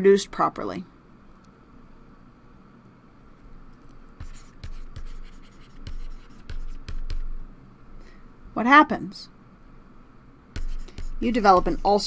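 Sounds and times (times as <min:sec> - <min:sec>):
stylus scratching on tablet: 0:04.2 - 0:07.4, 0:10.6 - 0:12.0.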